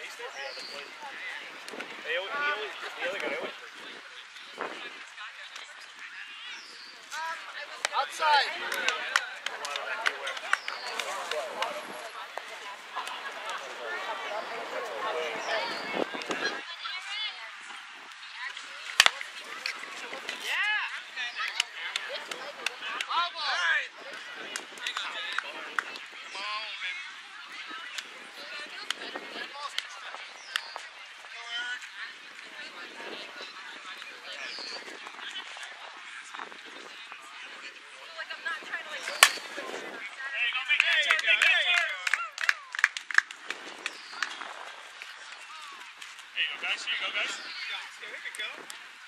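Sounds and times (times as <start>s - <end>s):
players shouting calls: 5.6s - 28.8s, 38.1s - 42.8s
bat hitting ball: 39.1s - 39.6s.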